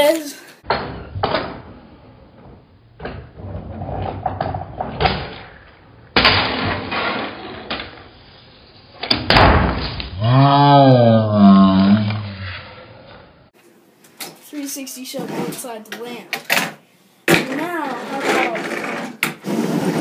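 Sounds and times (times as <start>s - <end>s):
sharp clatter: 4.3s - 8.1s.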